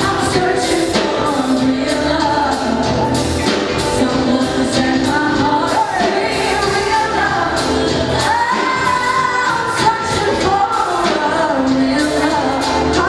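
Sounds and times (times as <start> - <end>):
live band playing: 0.0 - 13.0
woman singing lead: 0.0 - 13.0.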